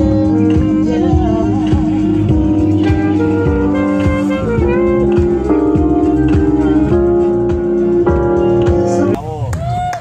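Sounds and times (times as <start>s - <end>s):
sustained keyboard chords: 0.0s - 9.2s
wavering saxophone notes: 0.0s - 9.2s
steady low beat: 0.0s - 9.3s.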